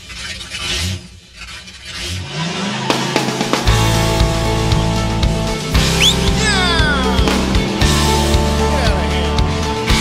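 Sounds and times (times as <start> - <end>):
engine revving up: 0.0 - 10.0
country rock band music: 3.6 - 10.0.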